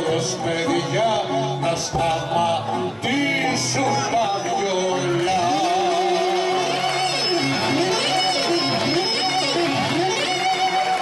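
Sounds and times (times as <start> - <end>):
person singing: 0.0 - 11.0
violin ornamented melody: 4.0 - 11.0.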